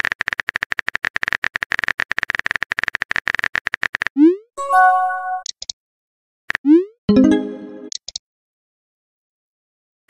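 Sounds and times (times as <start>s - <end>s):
bright descending chime: 4.6s - 5.4s, 7.1s - 7.9s
click: 7.9s - 8.2s.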